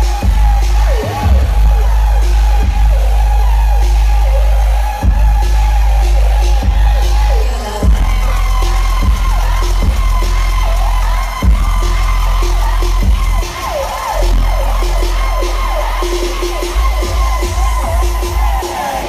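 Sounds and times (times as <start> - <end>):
heavy sub-bass: 0.0 - 19.0.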